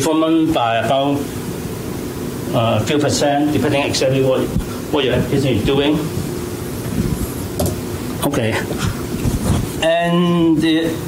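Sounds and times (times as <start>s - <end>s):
faint hum: 0.0s - 11.0s
low rumble and hiss: 0.0s - 11.0s.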